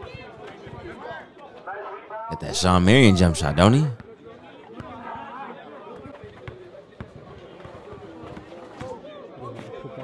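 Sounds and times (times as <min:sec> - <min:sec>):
crowd chatter: 0:00.0 - 0:10.0
spectators shouting: 0:02.3 - 0:04.0.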